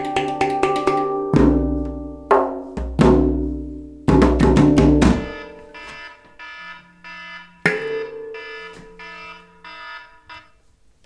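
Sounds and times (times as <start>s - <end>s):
handpan notes: 0.0s - 5.7s.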